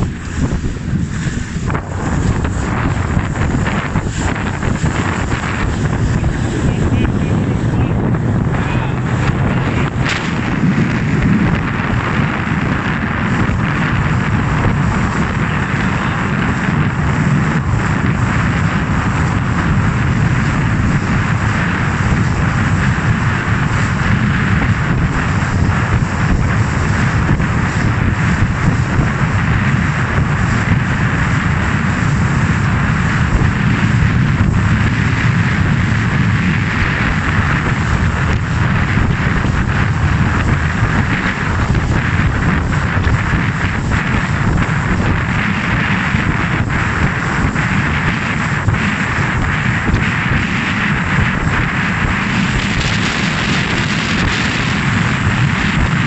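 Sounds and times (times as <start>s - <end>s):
motorboat engine drone: 0.0s - 56.0s
water rushing past hull: 0.0s - 56.0s
wind on microphone: 0.0s - 56.0s.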